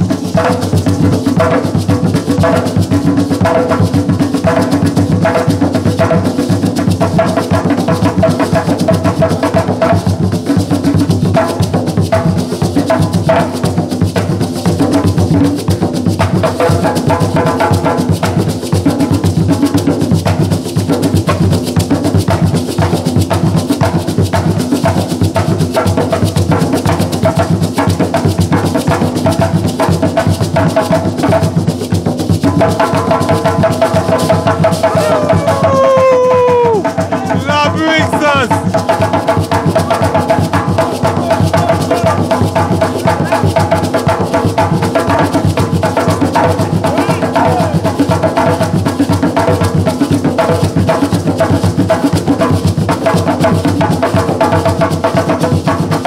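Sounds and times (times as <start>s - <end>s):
calabash shaker: 0.0s - 56.0s
hand drums playing rhythm: 0.0s - 56.0s.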